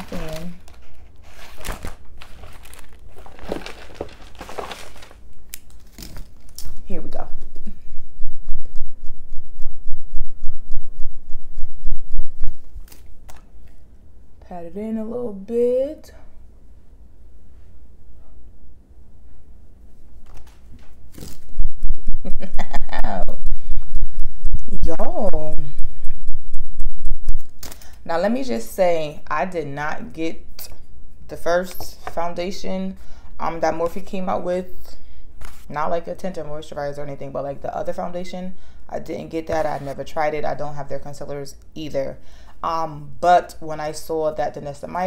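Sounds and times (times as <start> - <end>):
crinkling and rustling while rummaging: 0.0 - 6.9.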